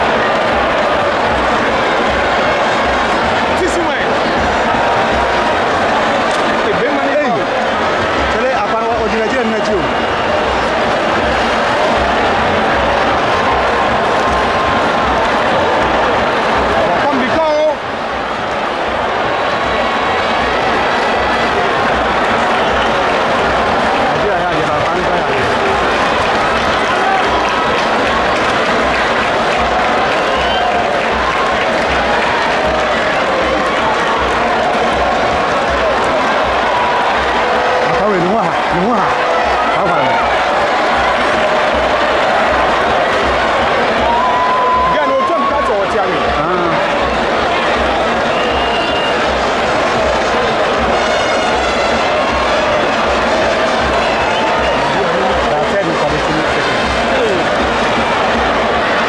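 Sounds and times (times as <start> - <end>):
stadium crowd cheering and applauding: 0.0 - 59.0
voices shouting: 0.0 - 59.0.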